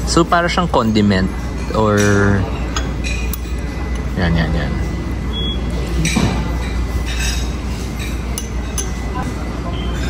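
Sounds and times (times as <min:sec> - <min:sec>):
metal spoon clinking porcelain: 0:07.0 - 0:09.2.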